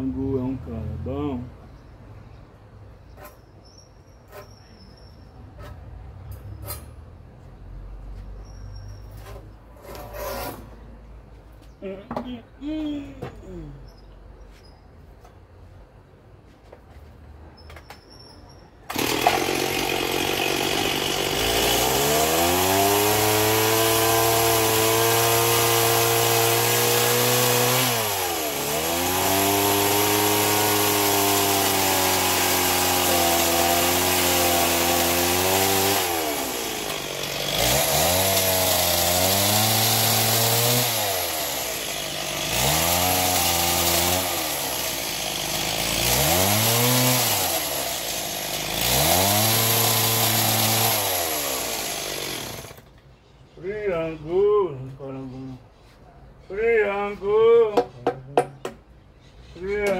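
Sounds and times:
chainsaw cutting wood: 18.9s - 52.9s.

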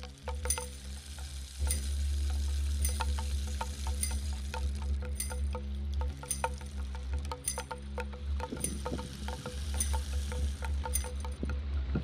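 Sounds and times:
deep steady drone: 0.0s - 12.0s
even hiss: 0.0s - 12.0s
struck bell-like tones: 1.6s - 11.8s.

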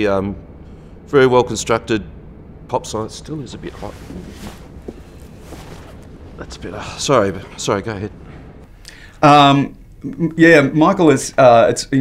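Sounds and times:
low room noise: 0.0s - 12.0s
faint rustling: 3.4s - 9.2s.

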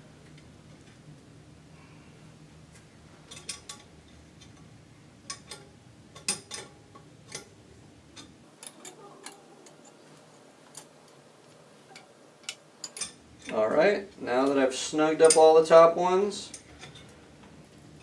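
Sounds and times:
nuts twisted on metal rods: 3.2s - 15.8s, 16.4s - 18.0s.

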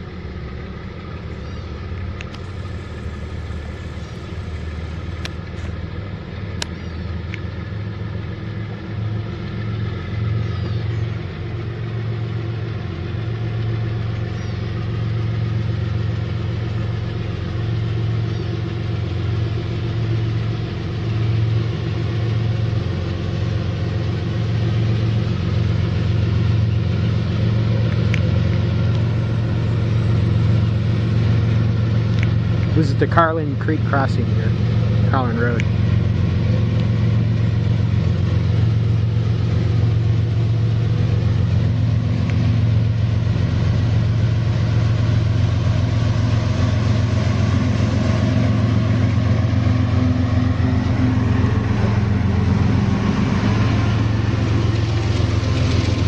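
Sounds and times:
diesel locomotive engines humming: 0.0s - 56.0s.

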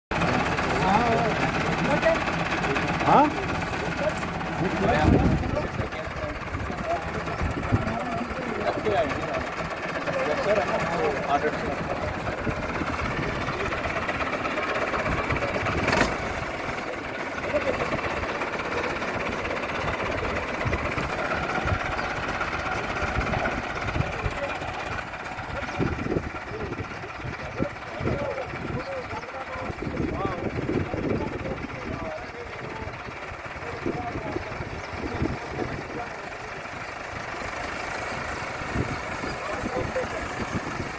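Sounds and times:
people's voices: 0.1s - 40.9s
tractor diesel engine running: 0.1s - 40.9s.

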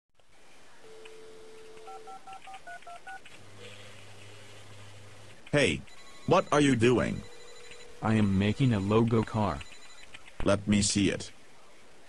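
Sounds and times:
low steady hum: 0.2s - 12.0s
touch-tone keypad beeps: 0.9s - 3.2s, 5.9s - 10.1s
telephone dial tone: 0.9s - 3.9s, 8.8s - 10.1s.

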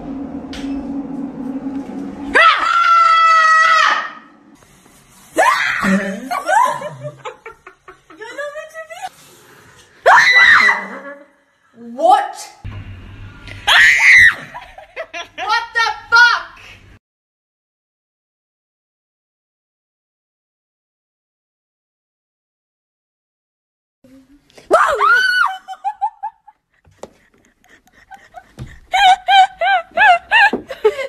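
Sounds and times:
woman screaming: 2.3s - 4.3s, 5.4s - 7.0s, 10.0s - 11.0s, 13.7s - 14.6s, 24.7s - 26.0s
woman laughing: 5.8s - 9.1s, 14.4s - 15.9s, 25.0s - 31.0s.

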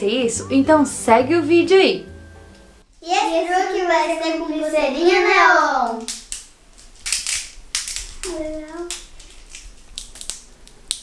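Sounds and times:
glow stick vials cracking: 5.8s - 11.0s.

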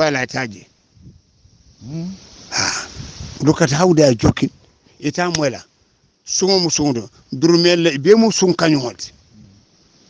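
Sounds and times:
man talking: 0.0s - 0.7s, 1.8s - 5.7s, 6.3s - 9.6s.

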